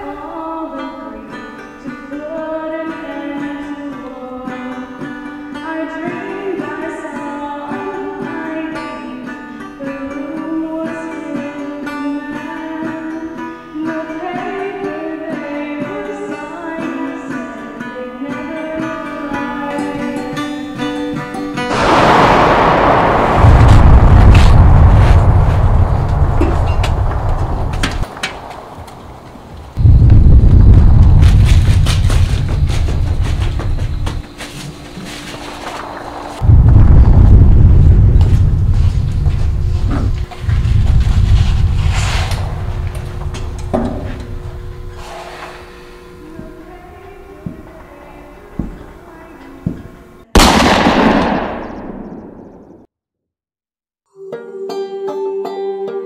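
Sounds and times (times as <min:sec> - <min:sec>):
loud blast: 0:21.7 - 0:33.6, 0:35.4 - 0:45.1, 0:50.4 - 0:52.4
deep rumble: 0:21.7 - 0:34.2, 0:35.2 - 0:48.4.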